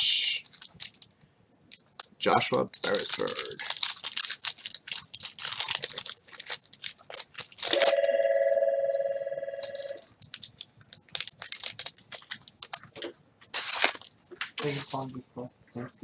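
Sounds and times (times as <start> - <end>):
plastic wrapper crinkling: 0.4 - 7.9, 9.6 - 12.9, 13.6 - 15.0
steady tone: 7.8 - 10.0.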